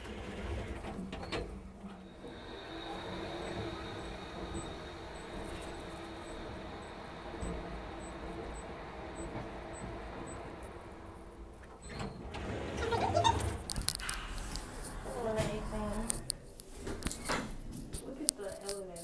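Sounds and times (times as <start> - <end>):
elevator hum: 0.0 - 18.3.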